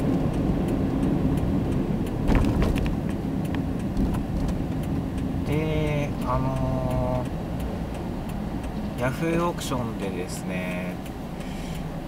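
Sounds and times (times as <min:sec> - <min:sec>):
car cabin engine and road noise: 0:00.0 - 0:12.0
man's voice: 0:05.5 - 0:07.3, 0:09.0 - 0:11.0.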